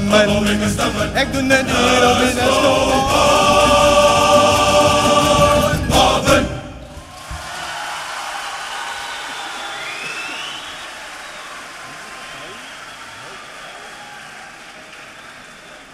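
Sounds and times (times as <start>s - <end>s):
male choir singing: 0.0s - 7.0s
audience applause and cheering: 6.8s - 15.9s
short rising whistle: 9.1s - 11.6s.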